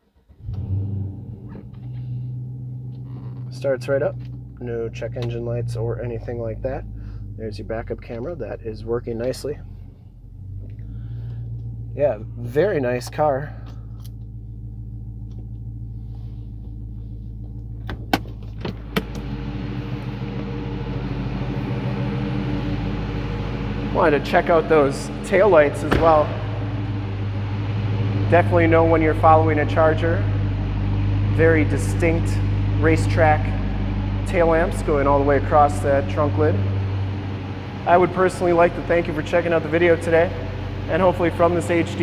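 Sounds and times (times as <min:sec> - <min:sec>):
car engine starting and idling: 0:00.0 - 0:42.0.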